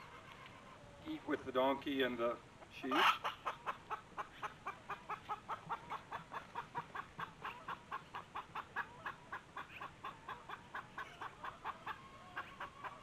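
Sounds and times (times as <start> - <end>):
chickens clucking: 0.0 - 13.0.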